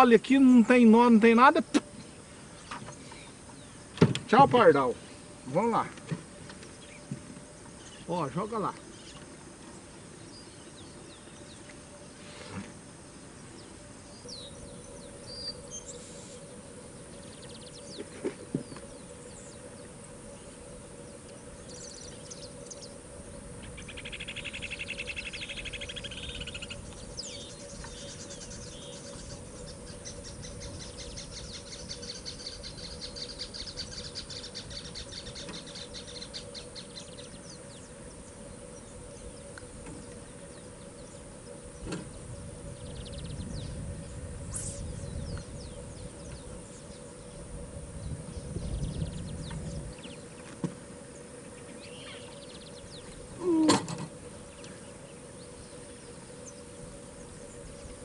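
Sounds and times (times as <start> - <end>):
small birds trilling: 0.0 - 12.2, 13.0 - 58.0
faint steady hum: 0.0 - 58.0.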